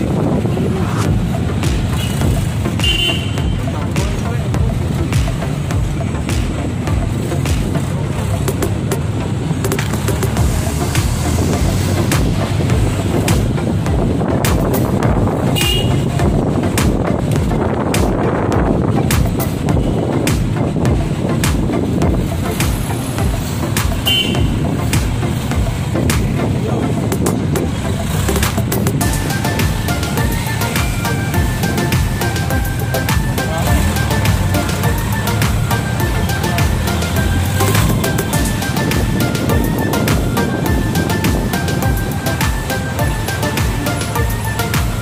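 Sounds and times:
vehicle engine and road noise: 0:00.0 - 0:45.0.

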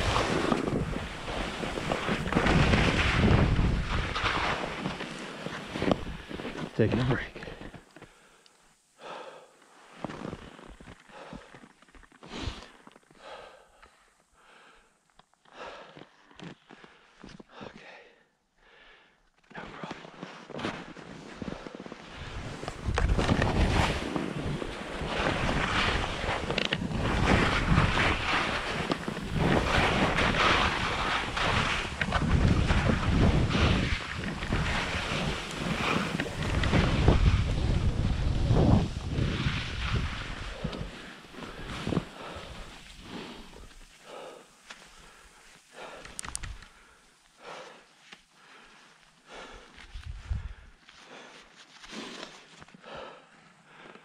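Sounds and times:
wind on microphone: 0:00.0 - 0:04.6, 0:22.2 - 0:43.2, 0:49.9 - 0:50.7
skis scraping on snow: 0:00.0 - 0:08.0, 0:09.8 - 0:12.8, 0:19.7 - 0:47.0, 0:47.6 - 0:53.0.

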